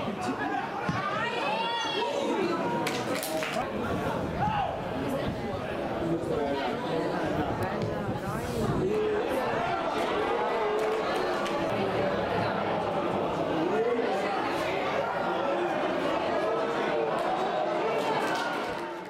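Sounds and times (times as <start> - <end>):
crowd shouting and chattering: 0.0 - 19.0.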